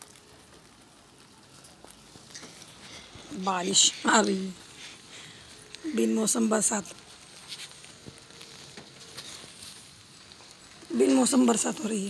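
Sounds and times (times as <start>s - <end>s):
light rain on plants: 0.0s - 12.0s.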